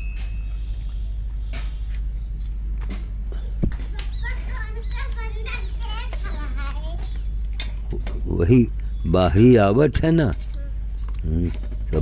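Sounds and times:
steady low hum: 0.0s - 12.0s
high-pitched voices: 3.8s - 7.3s.

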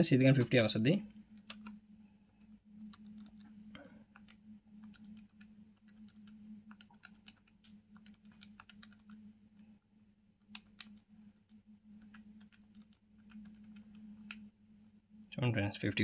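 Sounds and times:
low steady hum: 0.0s - 16.0s
calculator keys clicking: 4.1s - 9.2s, 12.1s - 14.4s.

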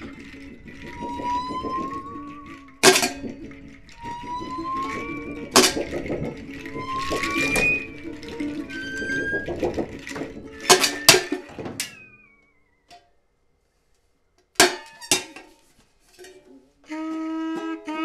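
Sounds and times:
sliding tones rising in pitch: 0.0s - 12.9s.

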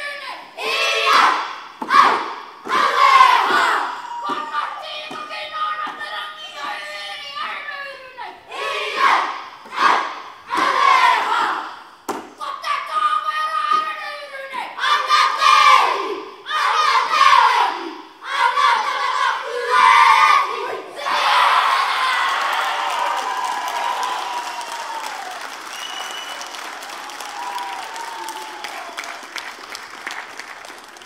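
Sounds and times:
children shouting a chant in unison: 0.0s - 11.8s, 14.6s - 22.7s.

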